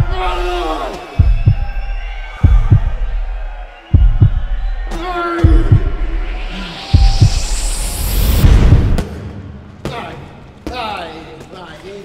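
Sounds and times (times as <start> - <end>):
heartbeat thumps: 0.0 - 10.0
steady low drone: 4.0 - 10.6.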